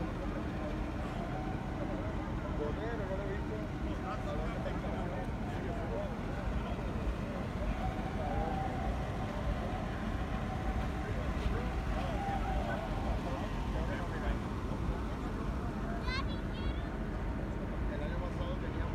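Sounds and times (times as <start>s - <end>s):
distant voices talking: 0.0s - 18.9s
low outdoor rumble: 0.0s - 18.9s.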